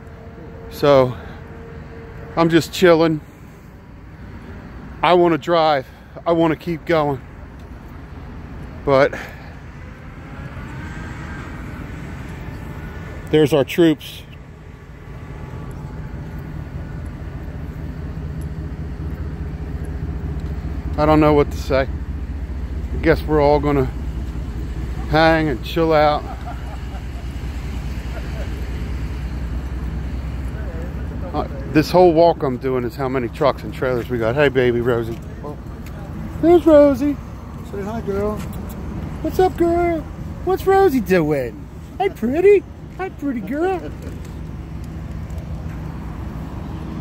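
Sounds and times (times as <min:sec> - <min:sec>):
constant low hum: 0:00.0 - 0:47.0
traffic rumble: 0:00.0 - 0:47.0
truck engines idling: 0:00.0 - 0:47.0.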